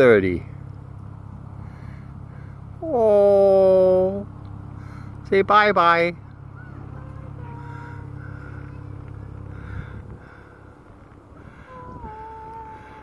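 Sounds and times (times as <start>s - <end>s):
low engine-like rumble: 0.0s - 13.0s.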